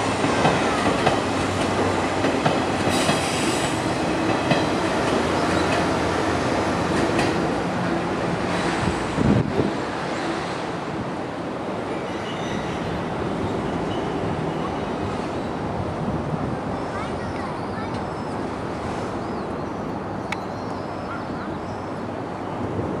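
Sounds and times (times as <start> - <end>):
train wheels rolling on rails: 0.0 - 19.2.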